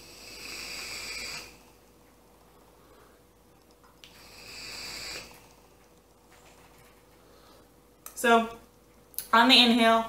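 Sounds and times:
vape airflow hiss with whistling: 0.0s - 1.6s, 4.1s - 5.4s.

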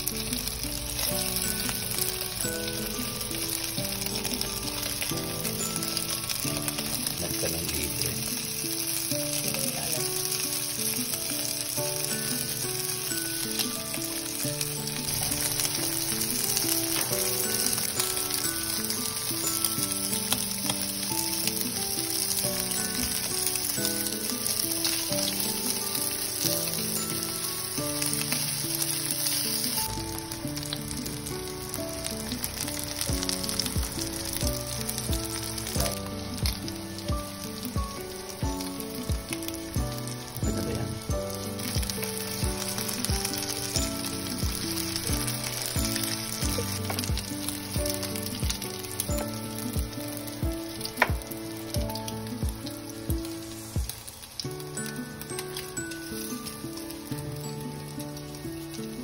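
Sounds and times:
background music: 0.0s - 59.0s
sausage sizzling in frying pan: 0.0s - 59.0s.

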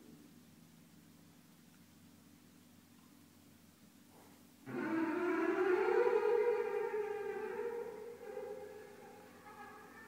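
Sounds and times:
long-held instrumental note: 4.7s - 10.0s.

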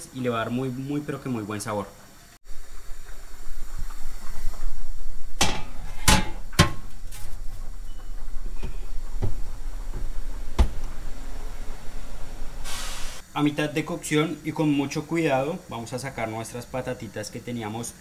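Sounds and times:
low steady hum: 0.0s - 18.0s
oven door opening and shutting: 5.4s - 11.7s
brief hiss: 12.6s - 13.3s.

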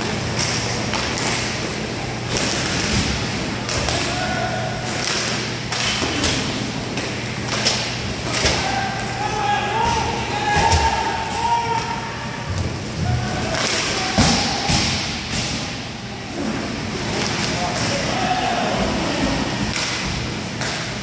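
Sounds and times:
hockey sticks and puck clacking: 0.0s - 12.0s, 12.6s - 15.8s, 17.0s - 21.0s
players shouting: 3.8s - 5.6s, 8.3s - 20.2s.

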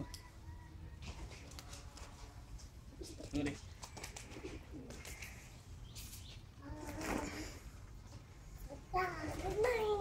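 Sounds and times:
dove cooing: 2.9s - 5.5s.

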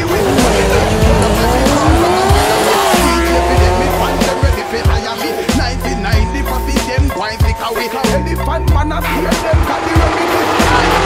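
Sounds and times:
race car engine revving: 0.0s - 6.2s, 9.1s - 11.0s
hip hop music: 0.0s - 11.0s.

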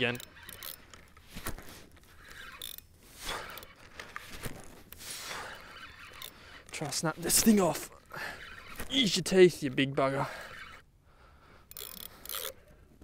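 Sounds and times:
fishing reel mechanical clicks: 0.0s - 1.2s, 1.9s - 4.1s, 5.3s - 10.8s, 11.6s - 12.8s.

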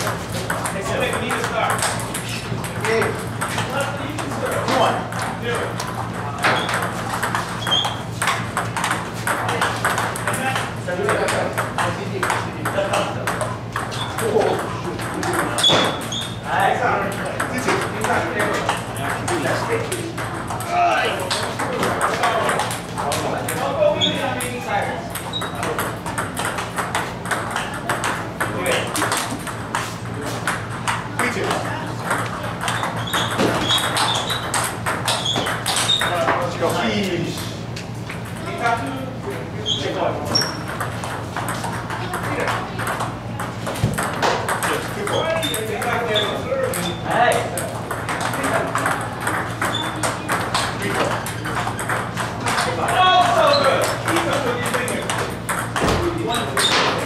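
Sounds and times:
voices in a hall: 0.0s - 57.0s
table tennis ball clicking: 24.2s - 29.8s, 30.5s - 36.1s, 46.7s - 56.8s.

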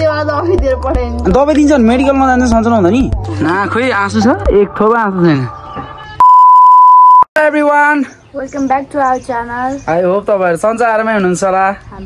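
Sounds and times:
high-pitched beep tone: 6.2s - 7.3s.

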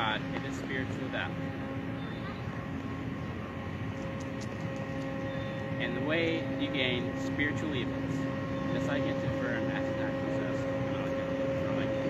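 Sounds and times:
distant engine drone: 0.0s - 12.0s
steady tones: 0.0s - 12.0s.

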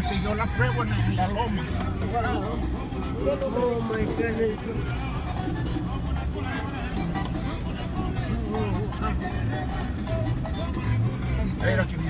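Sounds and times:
car engine and road rumble: 0.0s - 12.0s
music: 0.0s - 12.0s
voices: 0.0s - 12.0s.

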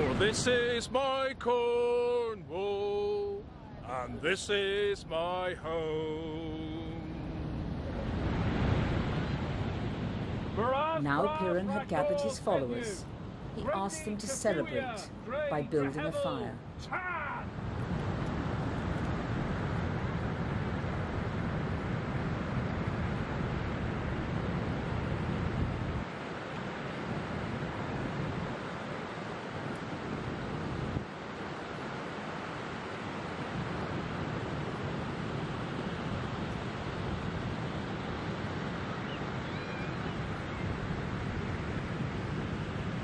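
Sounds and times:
surf breaking on beach: 4.3s - 13.0s
wind buffeting microphone: 17.5s - 43.0s.

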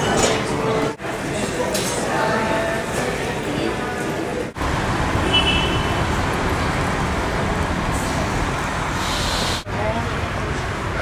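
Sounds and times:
rumble of passing vehicles: 4.6s - 11.0s.

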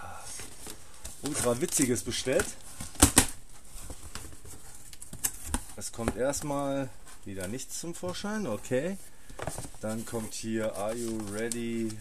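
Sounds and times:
cardboard rustling and scraping: 0.2s - 12.0s.

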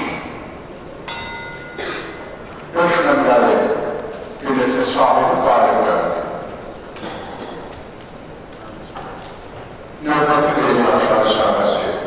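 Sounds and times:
bell ringing: 1.1s - 2.4s.

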